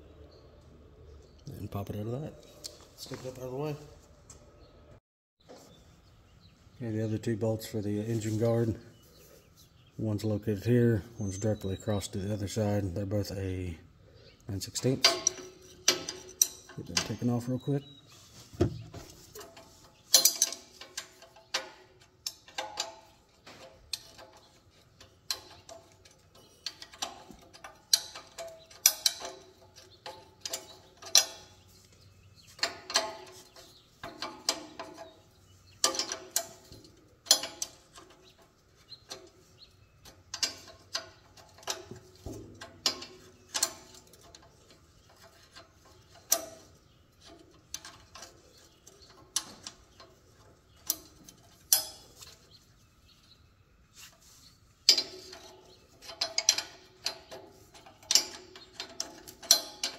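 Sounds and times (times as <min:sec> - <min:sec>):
metal tool clinking on bolts: 0:14.4 - 0:18.0, 0:19.0 - 0:52.6, 0:54.8 - 0:59.9.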